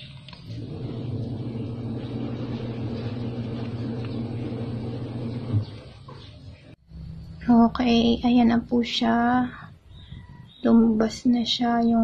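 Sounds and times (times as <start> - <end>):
low motor rumble: 0.1 - 7.6.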